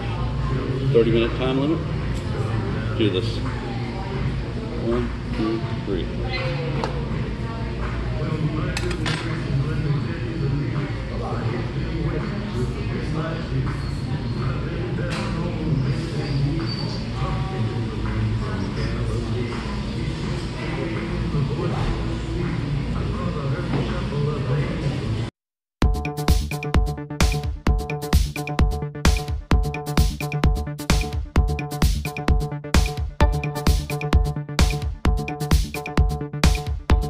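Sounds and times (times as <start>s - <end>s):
diners chatter: 0.0s - 25.3s
background music: 25.8s - 37.0s.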